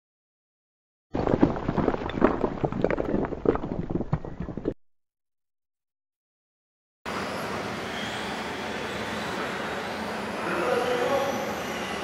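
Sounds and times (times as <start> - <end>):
irregular thuds and crackles: 1.2 - 4.8.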